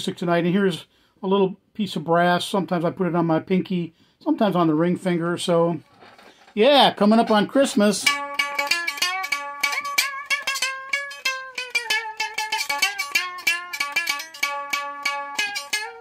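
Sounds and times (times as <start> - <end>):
picked string notes with slide: 7.0 - 16.0.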